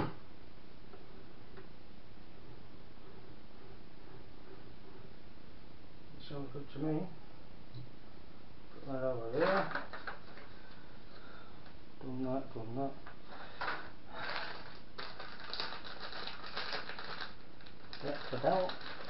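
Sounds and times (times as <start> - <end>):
plastic bags crinkling: 9.3 - 10.5, 13.5 - 19.0.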